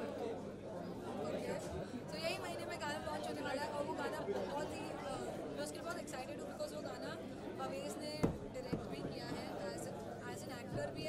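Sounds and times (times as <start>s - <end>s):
crowd chatter: 0.0s - 11.0s
woman talking: 1.4s - 11.0s.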